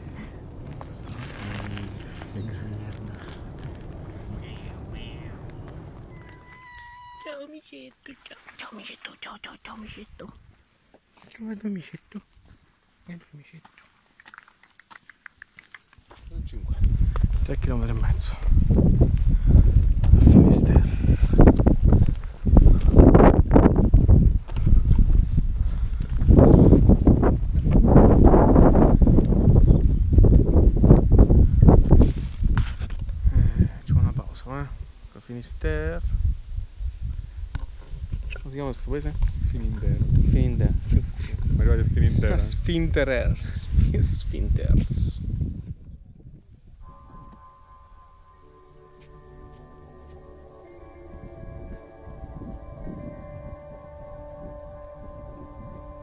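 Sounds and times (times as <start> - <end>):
low rumble on microphone: 0.0 - 7.2, 16.3 - 35.0, 39.0 - 47.5
footsteps on pavement: 0.5 - 6.9, 12.4 - 20.2, 21.2 - 28.0, 29.1 - 30.6, 48.9 - 50.3
cat meowing: 6.1 - 7.5.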